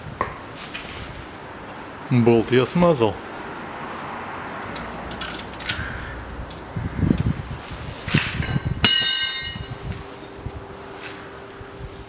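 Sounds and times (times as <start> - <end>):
sharp metallic clink: 8.8 - 9.8.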